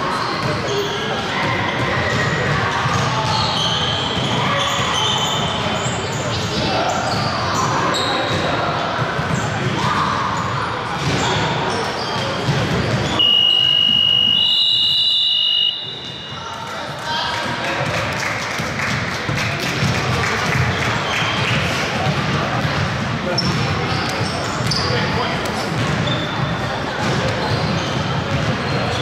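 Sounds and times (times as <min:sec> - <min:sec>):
voices echoing in hall: 0:00.0 - 0:29.0
loud shrill steady tone: 0:13.2 - 0:16.4.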